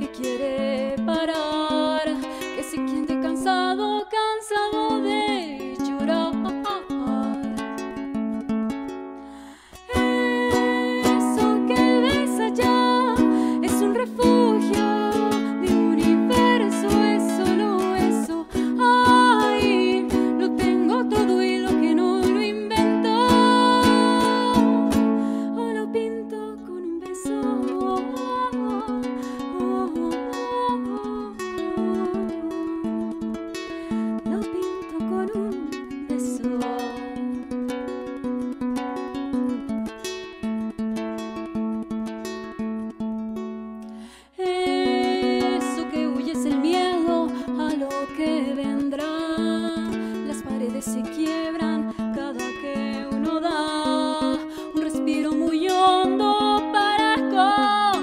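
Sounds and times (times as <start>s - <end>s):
woman singing: 0.0s - 8.4s, 9.4s - 37.7s, 44.1s - 58.0s
ukulele strumming: 0.0s - 58.0s.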